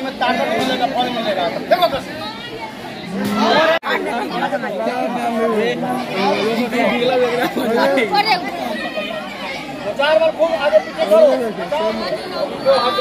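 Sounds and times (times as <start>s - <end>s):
crowd of students chattering: 0.0s - 13.0s.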